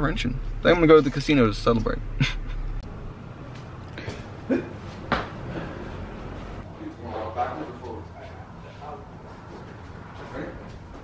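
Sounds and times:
steady low hum: 0.0 - 11.0
man laughing: 2.2 - 2.8.

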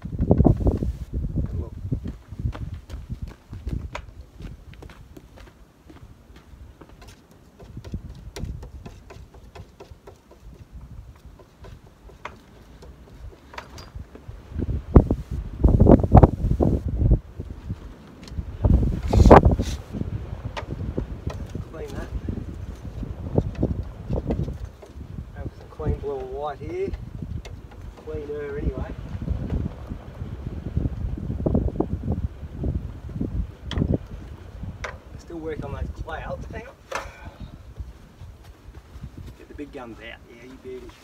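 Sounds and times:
gusty wind on microphone: 0.0 - 5.2, 7.6 - 9.0, 10.4 - 11.4, 12.9 - 40.2.

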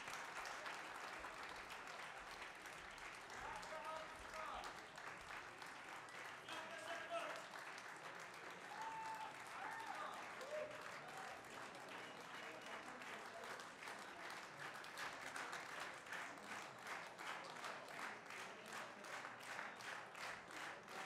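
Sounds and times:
audience applauding: 0.0 - 21.0.

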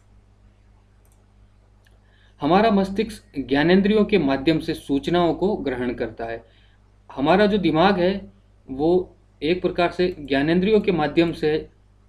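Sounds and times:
low electrical hum: 0.0 - 12.0
computer mouse clicks: 0.8 - 2.0.

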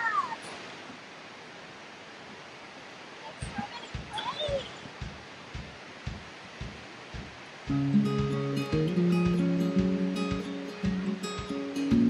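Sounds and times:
waterfall rushing: 0.0 - 12.0
soft low thuds: 3.4 - 12.0.

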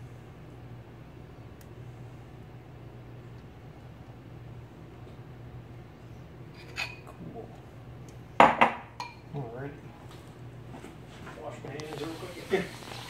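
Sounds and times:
low kitchen hum: 0.0 - 13.0
kitchen bowl clink: 8.4 - 9.3.

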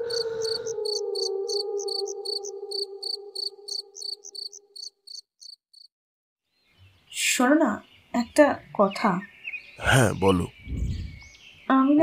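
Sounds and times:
crickets chirping: 0.0 - 5.9.

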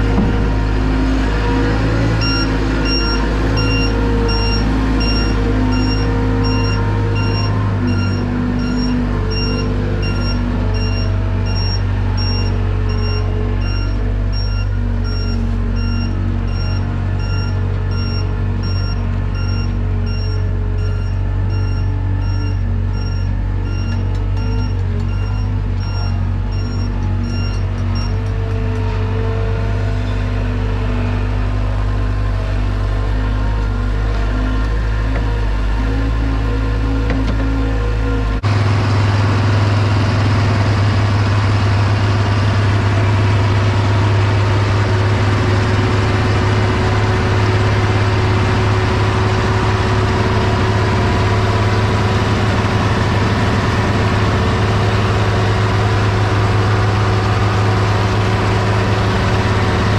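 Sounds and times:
engines running: 0.0 - 59.9
tractor diesel engine humming: 0.0 - 59.9.

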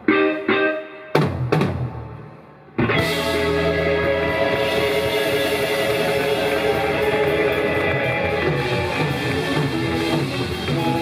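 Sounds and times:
electric guitars and bass chord: 2.8 - 11.0.

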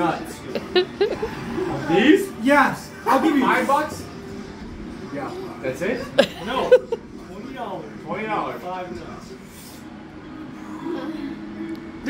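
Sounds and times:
faint voices: 0.0 - 2.4.

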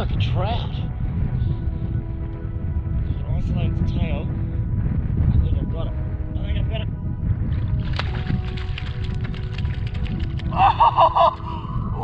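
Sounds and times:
low rumble: 0.0 - 12.0
water splashing in muddy pool: 7.8 - 10.5.

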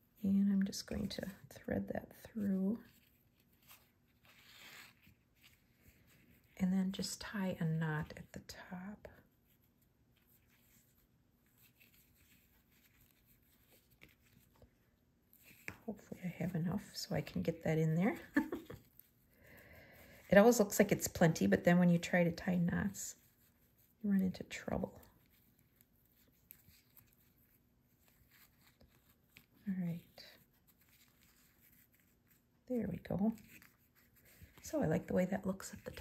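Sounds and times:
fabric ribbon rustling: 0.0 - 8.4, 9.0 - 36.0.

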